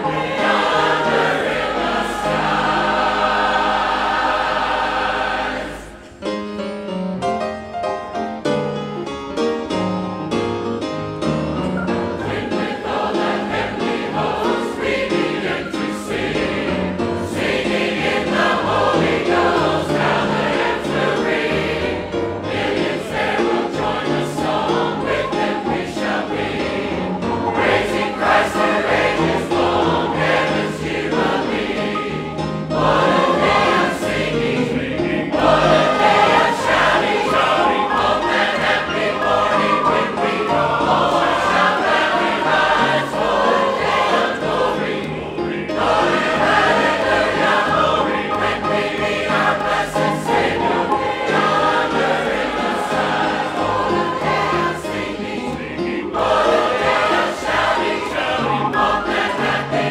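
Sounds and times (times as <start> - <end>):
congregation singing a hymn: 0.0 - 6.5, 11.8 - 59.9
grand piano accompaniment: 0.0 - 59.9.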